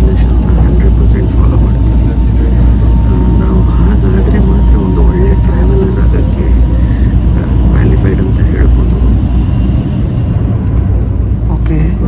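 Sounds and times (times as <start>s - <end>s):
man's voice: 0.0s - 9.2s, 11.4s - 12.0s
train running low rumble: 0.0s - 12.0s.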